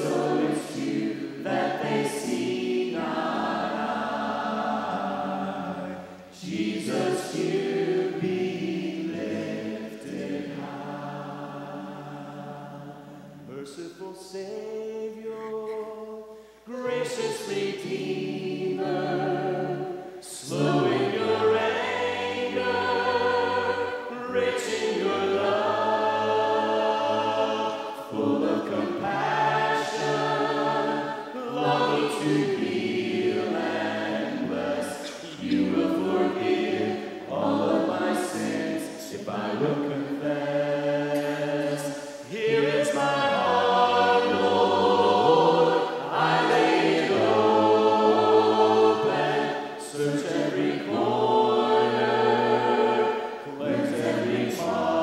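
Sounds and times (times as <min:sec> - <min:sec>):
choir singing hymn a cappella: 0:00.0 - 0:55.0.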